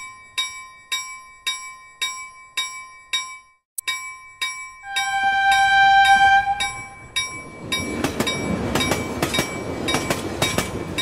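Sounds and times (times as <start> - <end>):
bell ringing: 3.9 - 7.9
train whistle blast: 4.9 - 7.0.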